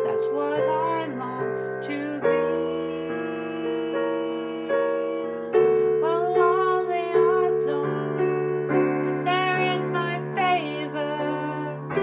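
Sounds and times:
person singing long wavering notes: 0.0 - 12.0.

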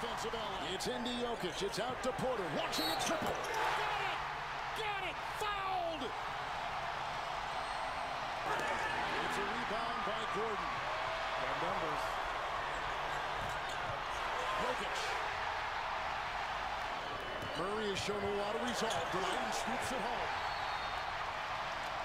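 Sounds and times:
arena crowd noise: 0.0 - 22.0.

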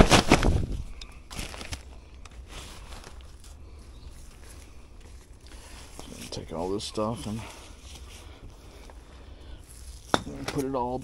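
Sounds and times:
umbrella fabric rustling and clicks: 0.0 - 1.9.

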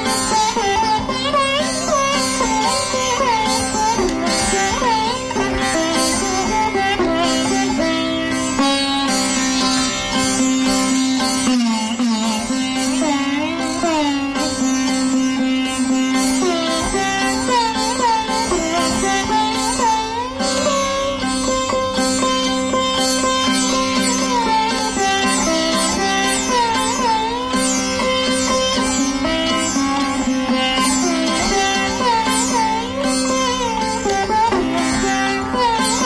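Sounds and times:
sitar drone strings ringing: 0.0 - 36.0
sitar melody with bent notes: 0.0 - 36.0.

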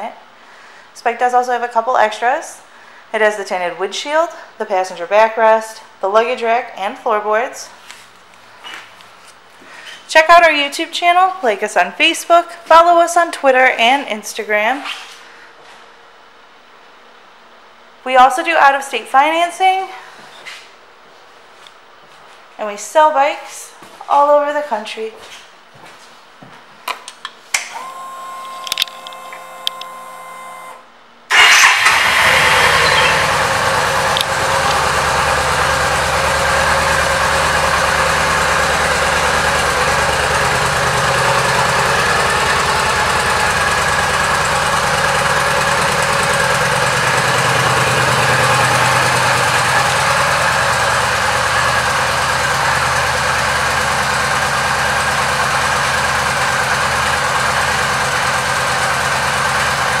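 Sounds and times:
motorcycle engine starting and idling: 27.6 - 60.0.

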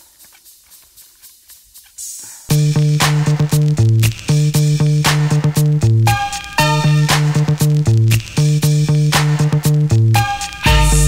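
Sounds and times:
skate blades clicking on ice: 0.0 - 3.2
light hiss: 0.0 - 5.3.

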